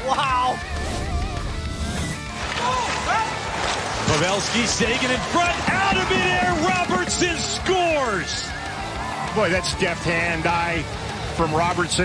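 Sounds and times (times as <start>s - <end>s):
whoosh: 0.6s - 2.6s
arena crowd noise: 2.3s - 12.0s.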